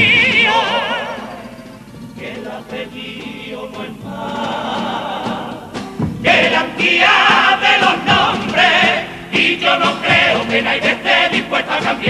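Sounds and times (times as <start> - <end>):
drums: 0.0 - 12.0
guitars: 0.0 - 12.0
male choir singing in harmony: 0.0 - 12.0.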